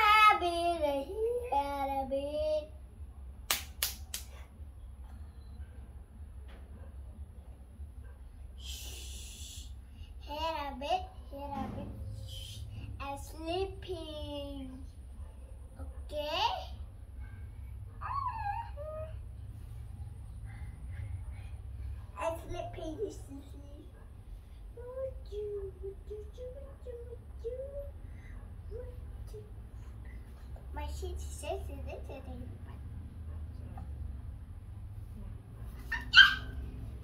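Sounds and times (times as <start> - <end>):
dog yipping: 17.2 - 19.2, 35.6 - 36.9.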